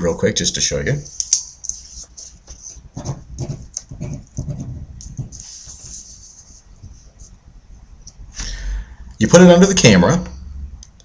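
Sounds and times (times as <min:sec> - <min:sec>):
pen scratching on paper: 0:01.7 - 0:07.4.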